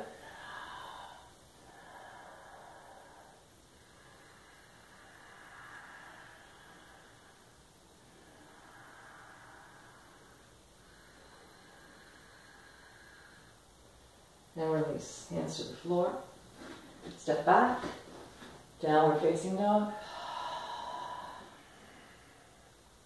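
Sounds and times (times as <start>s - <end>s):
slow breathing: 0.0s - 14.5s, 15.5s - 18.8s, 19.9s - 23.0s.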